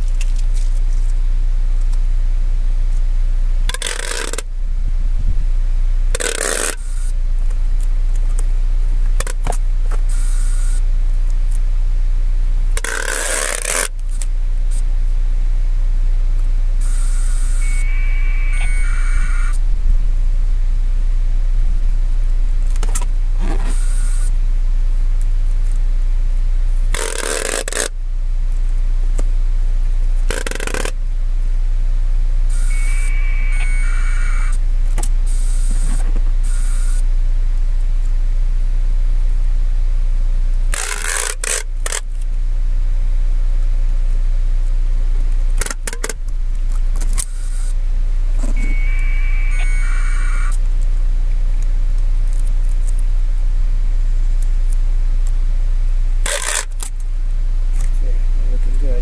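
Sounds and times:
steady low rumble: 0.0s - 12.8s, 13.8s - 27.0s, 27.9s - 40.8s, 42.1s - 59.0s
microphone handling scraping and rustling: 4.5s - 5.7s, 19.5s - 23.9s
rasping bursts: 16.8s - 20.0s, 32.5s - 34.6s, 48.5s - 50.6s.

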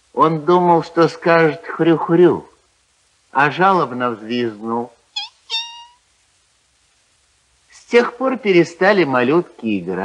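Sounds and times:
man imitating piglet squeal: 5.2s - 6.0s.

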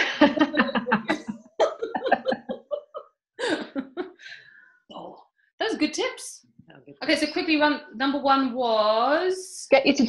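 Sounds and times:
women laughing: 0.0s - 4.2s.

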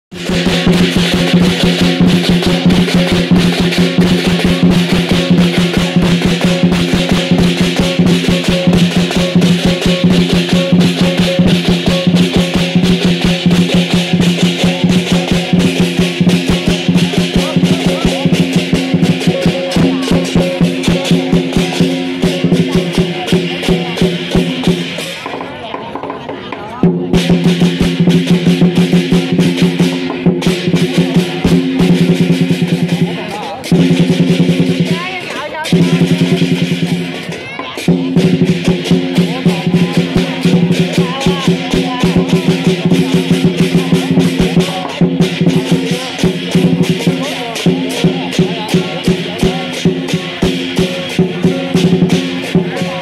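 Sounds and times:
cymbals clashing: 0.1s - 53.0s
large drum beating fast: 0.1s - 53.0s.

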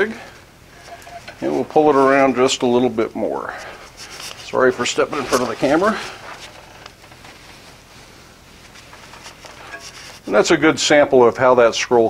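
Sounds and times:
rustles of handling: 0.0s - 10.6s.

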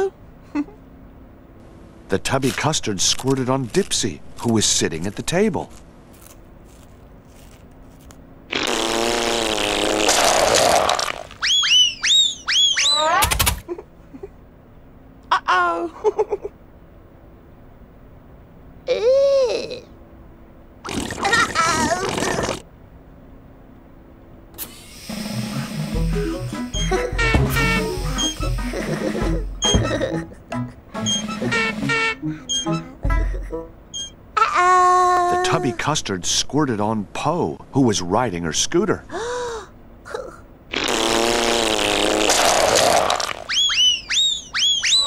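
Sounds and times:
cartoon buzzing squirt: 8.5s - 13.4s, 20.8s - 22.6s, 24.6s - 30.0s, 31.0s - 32.9s, 40.7s - 45.0s
high whistling chirps: 11.4s - 13.1s, 33.9s - 34.2s, 43.5s - 45.0s.

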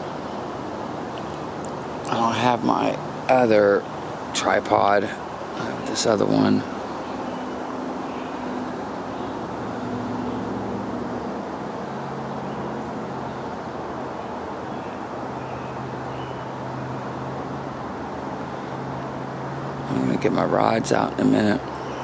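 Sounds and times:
distant traffic rumble: 0.0s - 22.0s
low engine drone: 0.0s - 22.0s.

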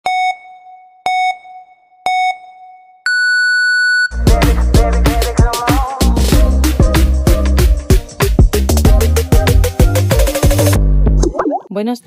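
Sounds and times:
countdown beeps: 0.1s - 4.1s.

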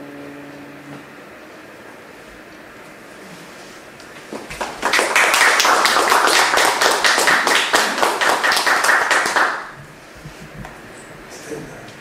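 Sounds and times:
audience applauding: 4.3s - 9.8s.

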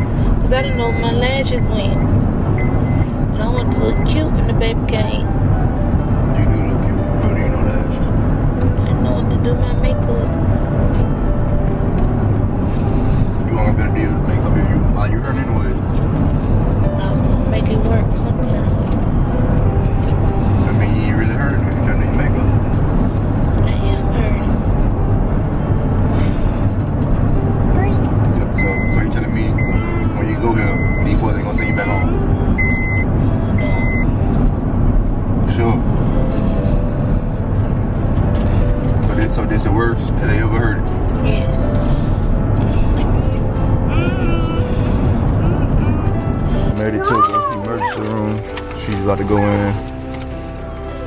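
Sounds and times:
car engine and tyres rumbling: 0.0s - 51.0s
short electronic beep: 0.7s - 4.1s, 28.6s - 34.2s.

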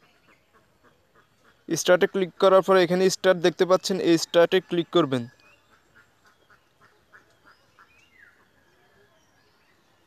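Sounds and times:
faint bird chirps: 3.8s - 10.0s.

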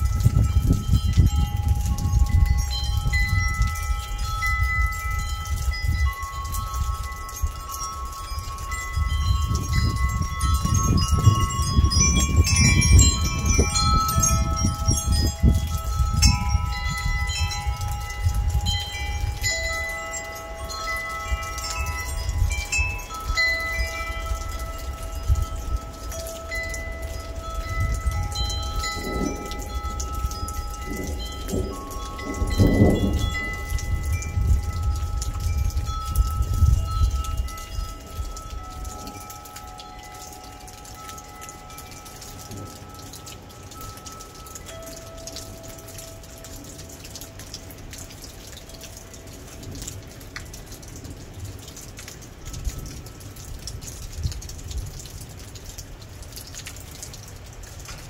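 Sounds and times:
rain hiss: 0.0s - 58.0s
wind chimes ringing: 0.0s - 58.0s
low rumble of thunder: 8.5s - 19.4s, 27.1s - 39.2s.

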